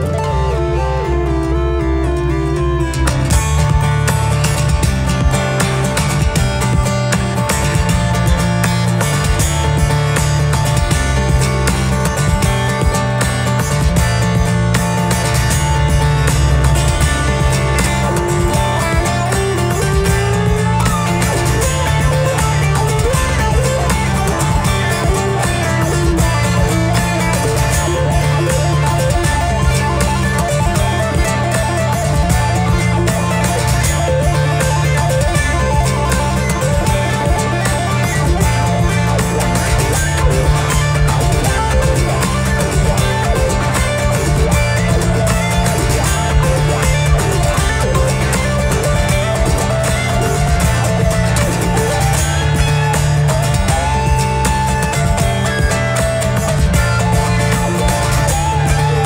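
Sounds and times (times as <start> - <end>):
fingerstyle acoustic guitar: 0.0 - 59.0.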